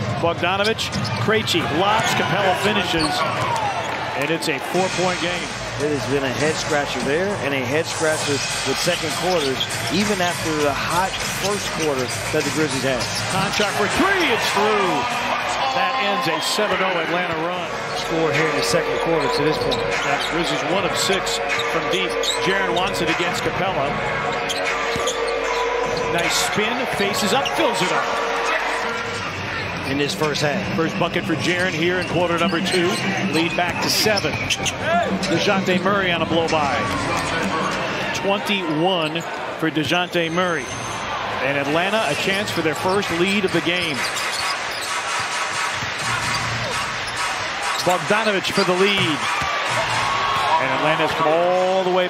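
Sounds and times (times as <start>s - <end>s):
arena crowd din: 0.0s - 52.0s.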